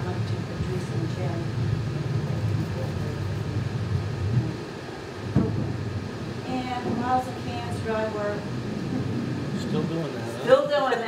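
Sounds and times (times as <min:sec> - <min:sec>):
faint murmured voices: 0:00.0 - 0:11.0
low room noise rumble: 0:00.0 - 0:11.0.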